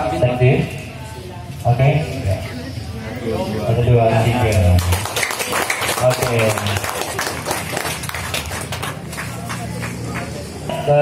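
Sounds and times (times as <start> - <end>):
people applauding: 4.5 - 10.6.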